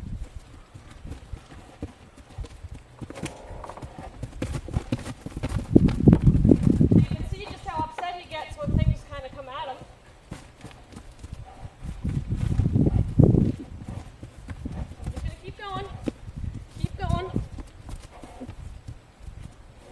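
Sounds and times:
horse hoofbeats on grass: 0:00.0 - 0:19.9.

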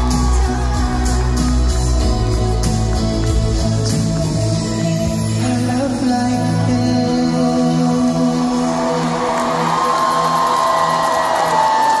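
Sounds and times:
crowd cheering: 0:00.0 - 0:05.4, 0:08.1 - 0:12.0
live pop music over speakers: 0:00.0 - 0:12.0.

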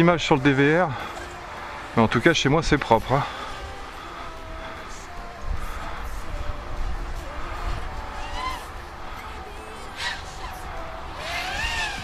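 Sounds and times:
quadcopter propellers whining: 0:05.9 - 0:12.0.

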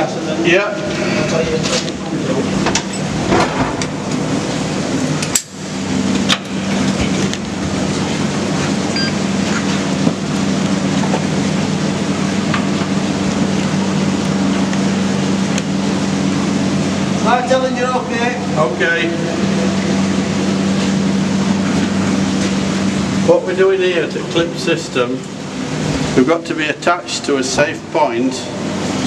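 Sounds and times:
loud steady rushing noise: 0:00.0 - 0:29.0
low mechanical hum: 0:00.0 - 0:29.0.

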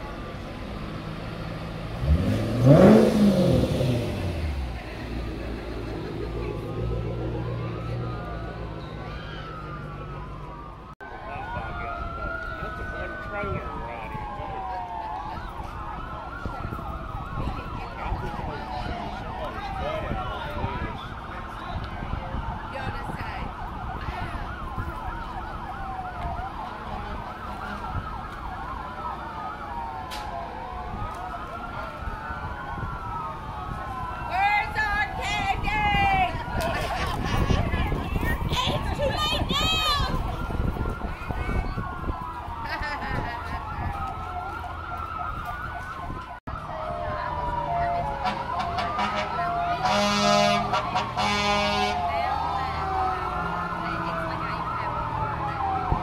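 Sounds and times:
emergency vehicle sirens wailing: 0:00.0 - 0:56.0.

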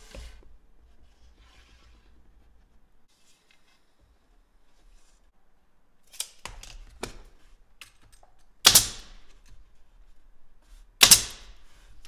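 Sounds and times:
nail gun firing: 0:08.6 - 0:09.3, 0:11.0 - 0:11.6.

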